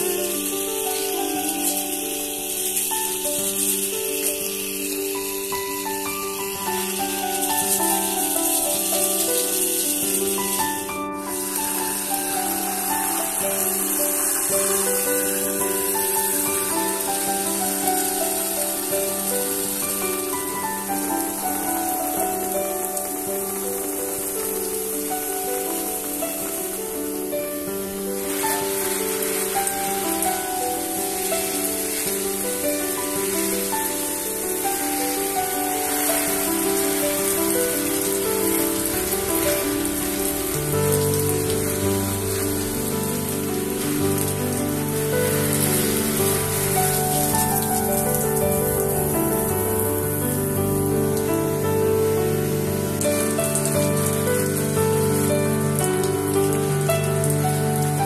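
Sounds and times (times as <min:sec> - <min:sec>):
background music with melody: 0:00.0 - 0:58.0
water spraying onto leaves: 0:00.0 - 0:58.0.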